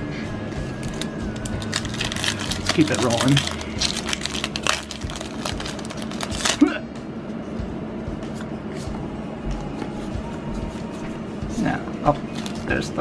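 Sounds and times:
cards rustling: 0:00.8 - 0:06.6
foil wrapper crinkling: 0:00.8 - 0:06.6, 0:12.3 - 0:12.7
foil wrapper ripping: 0:00.8 - 0:06.6.

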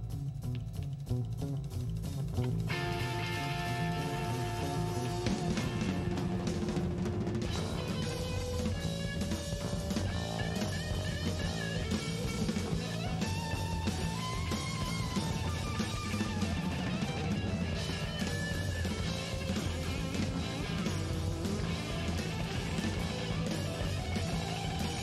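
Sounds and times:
drum kit: 0:00.0 - 0:25.0
electric guitars: 0:00.0 - 0:25.0.

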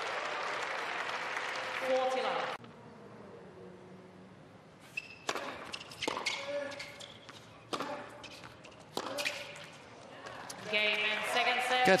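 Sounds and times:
crowd applause: 0:00.0 - 0:02.6
tennis ball hit with rackets: 0:05.2 - 0:09.7.

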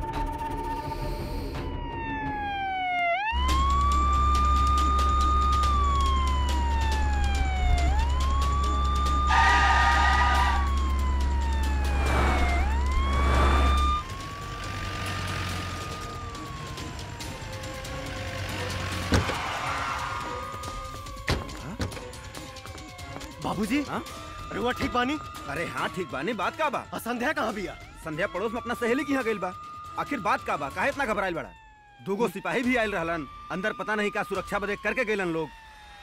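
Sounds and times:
police siren wailing: 0:00.0 - 0:36.0.

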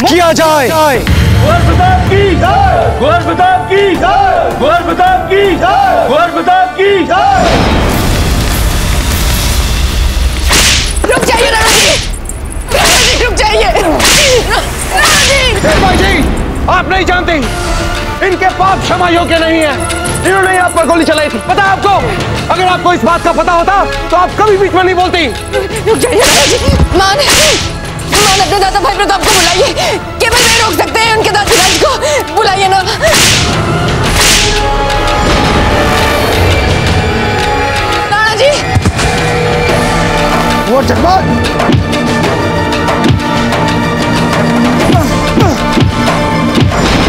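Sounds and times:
low dramatic music: 0:00.0 - 0:47.0
whip-like whoosh effects: 0:33.1 - 0:34.6.

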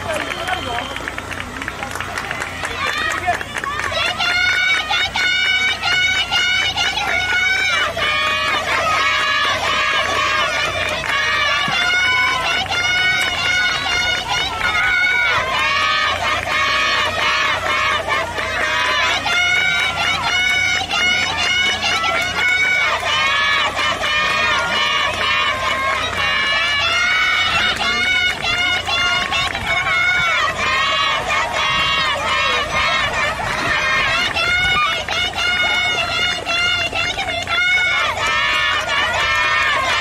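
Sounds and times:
girls shouting cheers: 0:02.6 - 0:40.0.

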